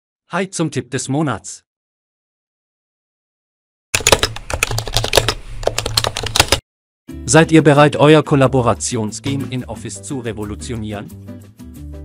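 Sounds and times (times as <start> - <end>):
keyboard typing clicks: 4.0 - 6.6.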